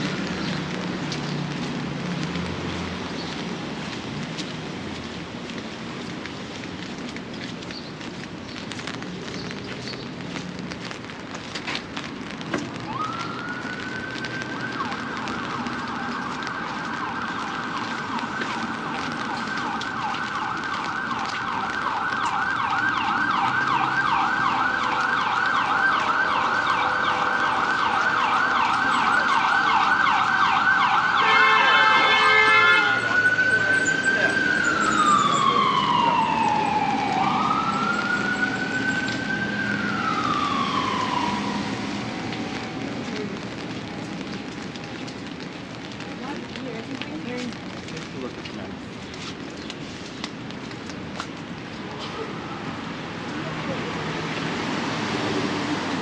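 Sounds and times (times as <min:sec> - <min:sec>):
emergency siren: 0:12.2 - 0:46.6
vehicle horn blasts: 0:31.2 - 0:33.0.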